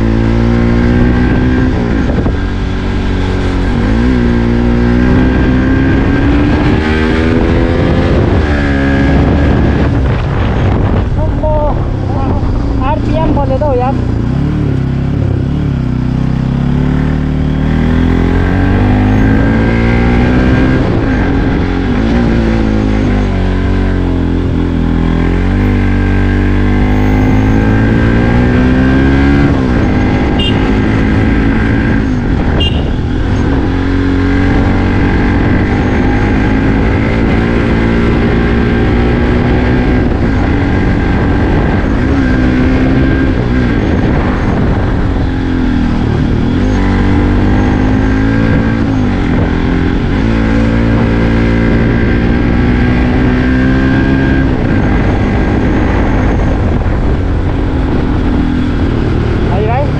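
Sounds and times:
motorcycle engine revving uphill: 0:00.0 - 0:59.9.

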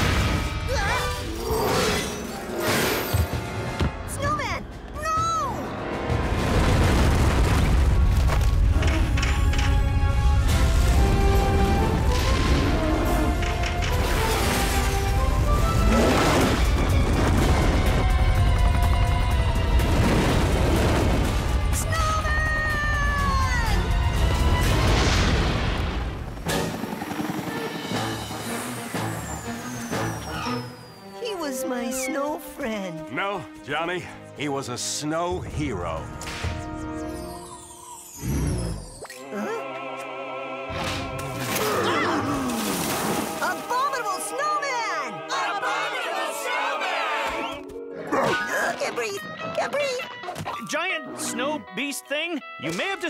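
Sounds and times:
orchestral score: 0:08.6 - 0:53.0.

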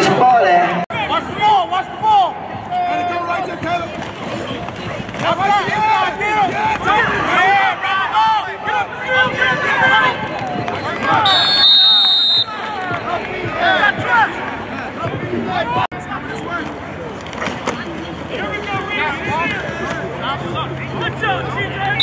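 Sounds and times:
referee's whistle: 0:11.2 - 0:12.6.

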